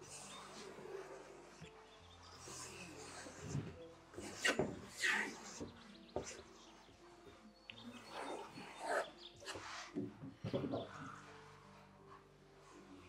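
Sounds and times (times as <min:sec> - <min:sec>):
birdsong: 0:00.0 - 0:13.0
soft relaxing background music: 0:00.0 - 0:13.0.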